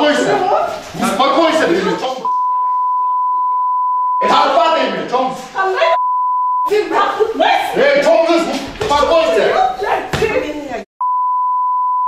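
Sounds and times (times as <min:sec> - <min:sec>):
censor bleep tone: 0:02.2 - 0:04.2, 0:05.9 - 0:06.7, 0:11.0 - 0:12.0
voices: 0:04.2 - 0:06.0, 0:06.7 - 0:10.9.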